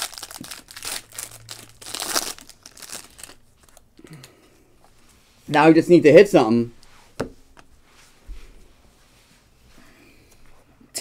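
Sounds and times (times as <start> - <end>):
wrapper crinkling: 0.0 - 3.9.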